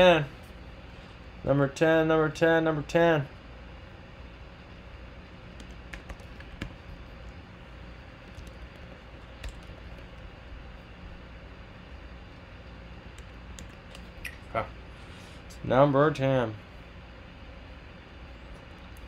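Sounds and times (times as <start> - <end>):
low room hum: 0.0 - 19.0
keyboard keystrokes: 5.6 - 6.8, 9.4 - 10.2.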